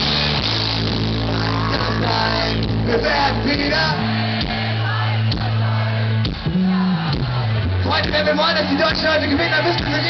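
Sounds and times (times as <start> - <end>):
live rock band playing: 0.0 - 10.0
person singing: 1.5 - 4.0.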